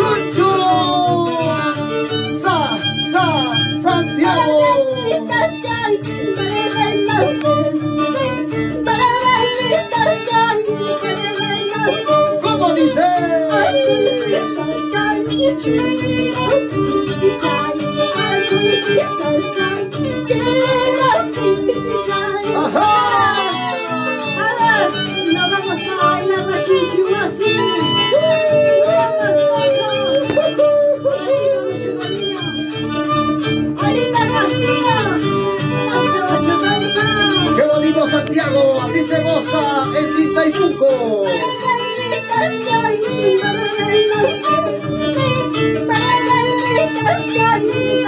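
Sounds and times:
plucked harp bass rhythm: 0.0 - 48.0
violins playing melody: 0.0 - 48.0
plucked harp bass beat: 28.2 - 32.1
woman singing high note: 45.7 - 48.0.

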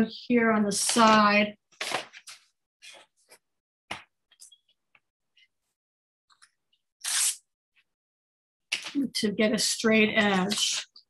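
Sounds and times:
paper tearing: 7.0 - 7.4.

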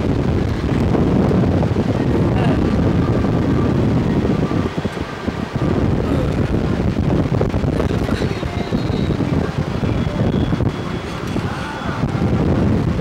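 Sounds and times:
wind rushing over microphone: 0.0 - 13.0.

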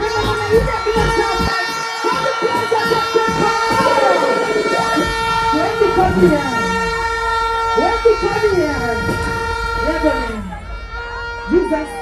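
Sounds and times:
air horn effect: 0.0 - 12.0
voices: 0.0 - 12.0
falling siren-like glides: 3.3 - 12.0.

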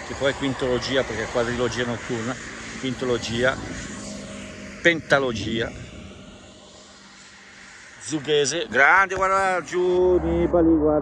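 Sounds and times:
distant engine drone: 0.0 - 11.0
outdoor background noise: 0.0 - 11.0.

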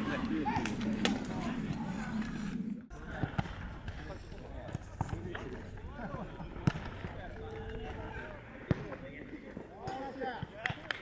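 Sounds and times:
distant players shouting: 0.0 - 4.1.

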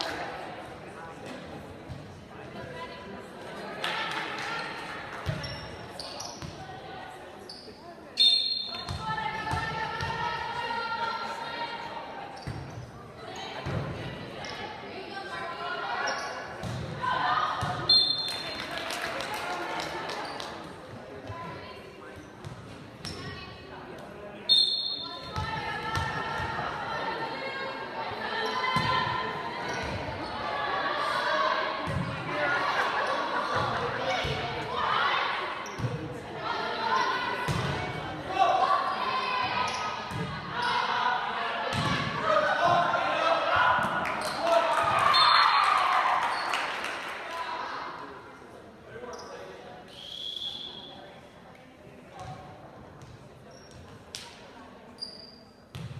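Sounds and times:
spectators' voices: 0.0 - 54.9
referee's whistle: 8.2 - 8.9, 17.8 - 18.5, 24.5 - 25.2, 45.0 - 45.5, 49.9 - 51.0.

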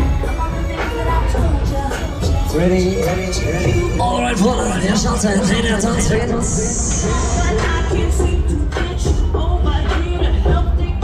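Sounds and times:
fairground ride music: 0.0 - 11.0.

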